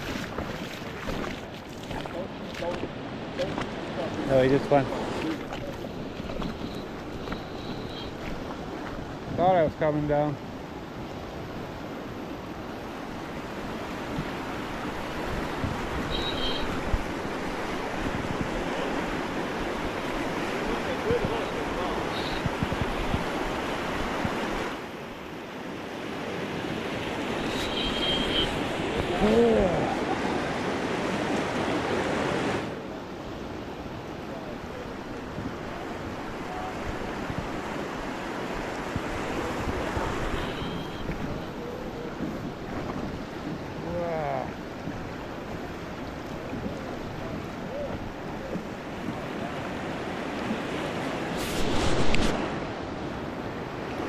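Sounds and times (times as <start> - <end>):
river rushing over rocks: 0.0 - 7.3, 8.1 - 54.0
wind buffeting microphone: 22.4 - 24.7, 35.2 - 53.8.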